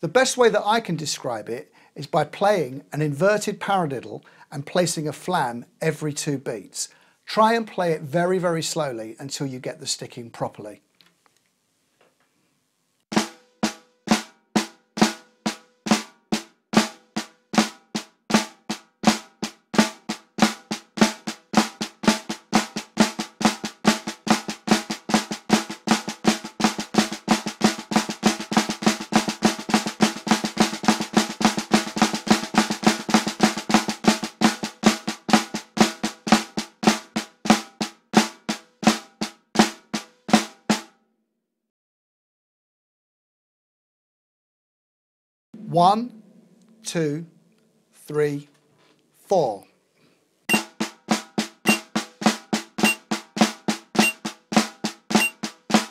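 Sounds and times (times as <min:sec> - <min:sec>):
snare drum rudiment: 0:13.1 - 0:40.8, 0:50.5 - 0:55.9.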